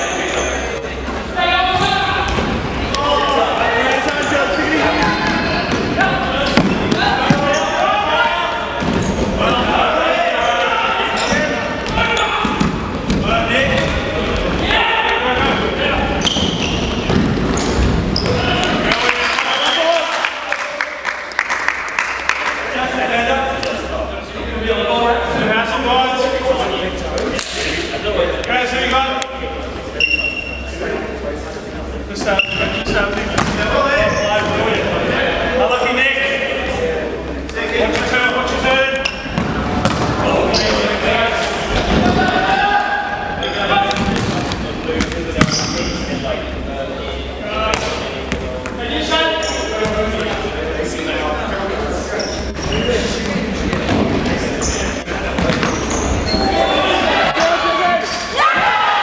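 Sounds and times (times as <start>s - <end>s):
players shouting: 13.3s - 16.8s, 40.0s - 44.0s, 55.7s - 59.0s.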